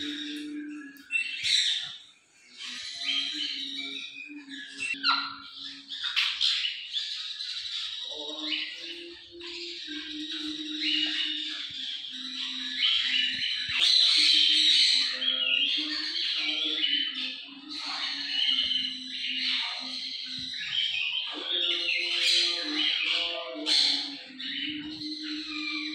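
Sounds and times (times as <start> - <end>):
birds squawking and chattering: 0.0 - 25.9.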